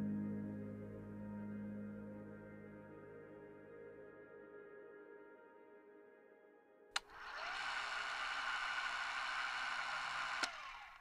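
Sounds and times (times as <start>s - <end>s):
hissing clattering whir: 7.0s - 11.0s.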